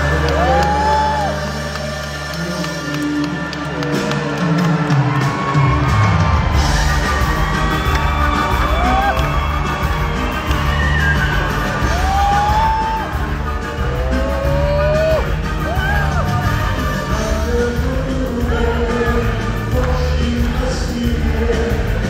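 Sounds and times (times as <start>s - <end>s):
audience cheering and whooping: 0.0s - 22.0s
live band music: 0.0s - 22.0s.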